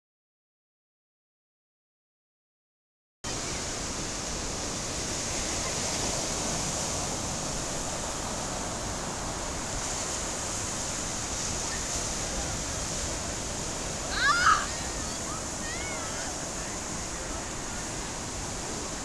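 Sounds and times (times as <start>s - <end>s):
ocean surf breaking: 3.3s - 19.0s.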